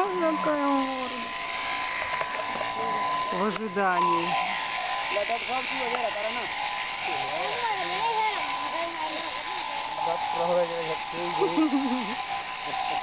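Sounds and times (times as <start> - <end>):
electric clippers whining: 0.0 - 13.0
people talking: 2.6 - 4.3, 7.1 - 12.1.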